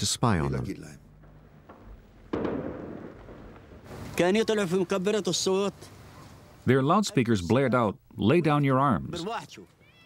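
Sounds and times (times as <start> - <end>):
sharp bang: 1.2 - 4.1.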